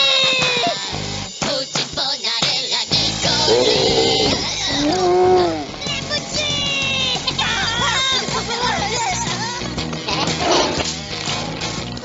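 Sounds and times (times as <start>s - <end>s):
background music: 0.0s - 12.0s
cartoon character wavering cry: 3.5s - 5.7s.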